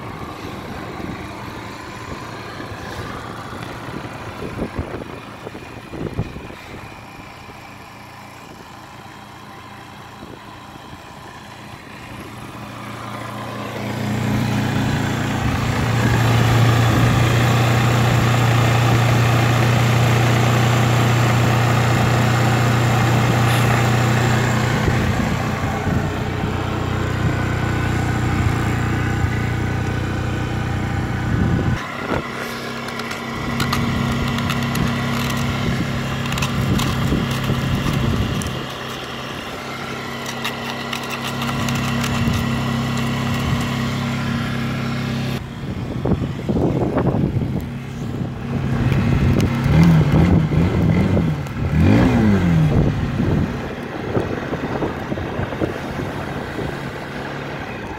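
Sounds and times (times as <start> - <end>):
motorcycle engine idling: 0.0 - 57.9.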